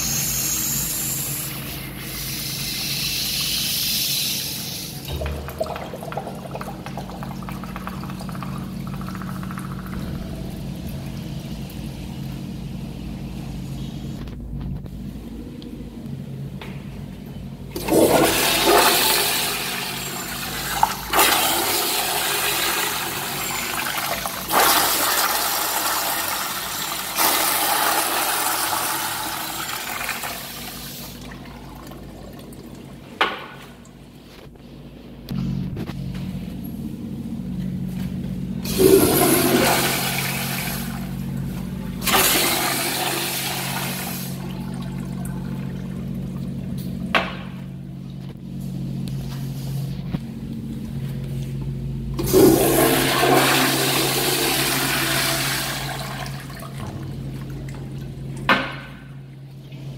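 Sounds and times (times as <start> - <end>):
toilet flushing: 0.0 - 14.1, 17.7 - 34.2, 38.6 - 47.8, 52.1 - 59.9.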